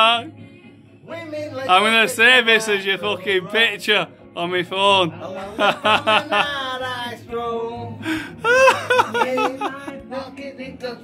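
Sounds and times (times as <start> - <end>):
person laughing: 5.5 - 6.6, 8.1 - 10.0.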